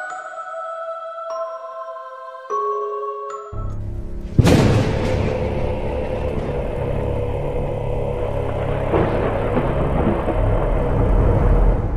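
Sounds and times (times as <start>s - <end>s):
dark cinematic drone music: 3.6s - 11.9s.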